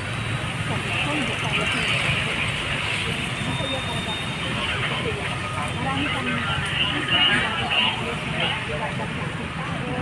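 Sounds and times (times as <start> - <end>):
heavy engines rumbling: 0.0 - 10.0
people talking: 0.3 - 10.0.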